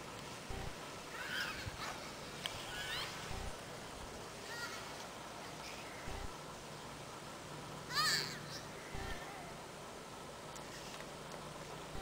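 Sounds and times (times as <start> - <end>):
children squealing: 1.1 - 2.0, 2.6 - 3.3.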